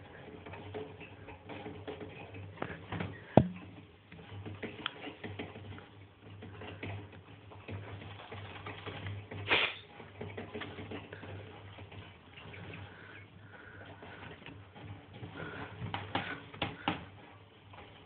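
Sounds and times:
low steady hum: 3.2 - 3.8.

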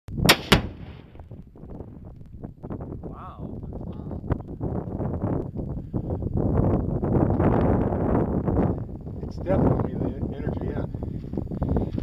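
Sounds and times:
explosion with rolling rumble: 0.1 - 4.5.

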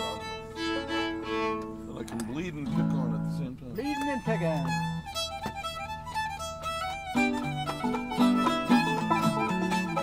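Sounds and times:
fiddle playing folk tune: 0.0 - 10.0.

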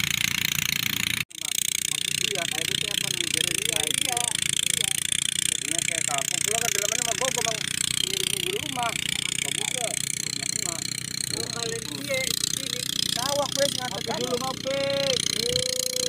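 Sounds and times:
machinery engine noise: 0.0 - 16.0
people talking: 1.3 - 16.0.

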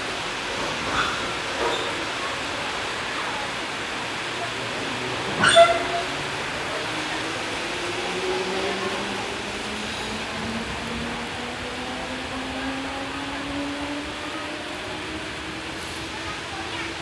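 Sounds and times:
wheels rumbling on rail: 0.0 - 17.0.

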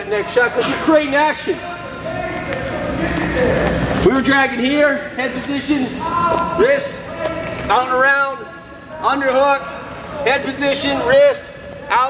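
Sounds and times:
low voices: 0.0 - 12.0.

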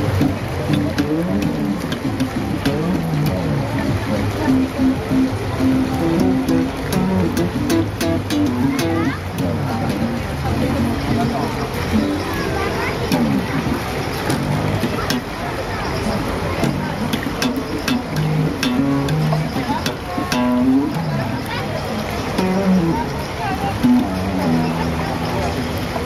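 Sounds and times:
funk electric bass line: 0.0 - 15.4, 16.6 - 26.0.

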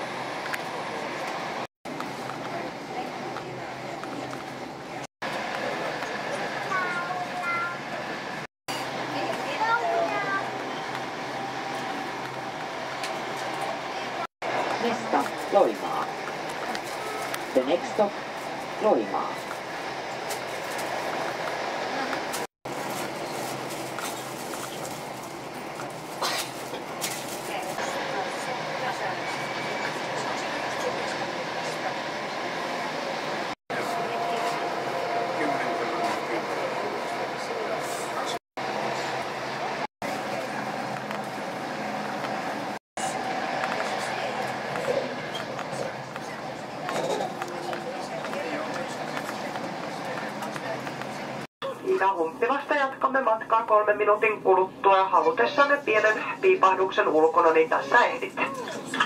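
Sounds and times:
train running noise: 0.0 - 59.0
quiet voices of passengers: 0.2 - 59.0
faint voices: 27.5 - 52.2.

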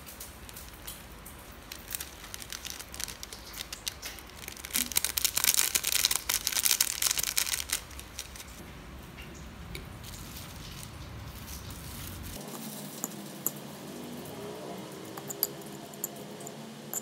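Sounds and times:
plastic sachet crinkling: 0.0 - 8.6, 9.9 - 13.4.

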